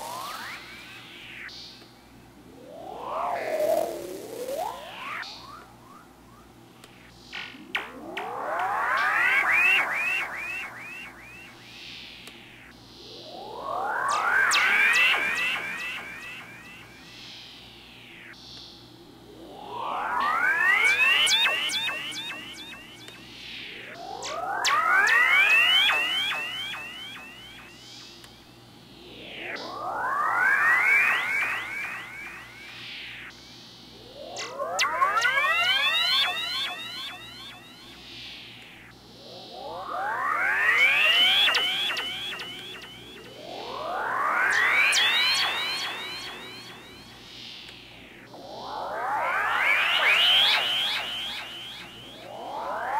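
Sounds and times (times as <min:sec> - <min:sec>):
synth falling sweep: 0:00.0 - 0:52.9
high buzzy synth tone: 0:07.2 - 0:18.6, 0:19.4 - 0:52.9
synth pitch glides with echoes: 0:13.0 - 0:17.2, 0:24.0 - 0:28.5, 0:29.1 - 0:38.1, 0:39.5 - 0:52.9.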